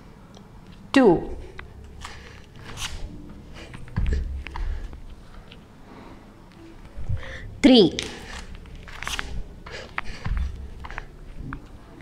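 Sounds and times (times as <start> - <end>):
rustling on a yoga mat: 8.0 - 11.6.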